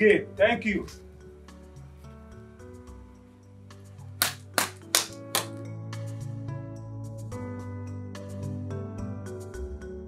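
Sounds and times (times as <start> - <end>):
background music: 0.0 - 10.0
sharp hand claps: 4.2 - 5.7.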